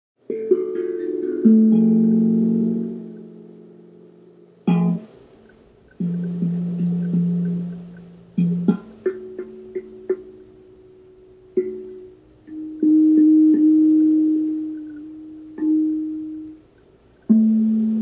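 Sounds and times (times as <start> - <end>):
plucked guitar chords: 0.2 - 18.0.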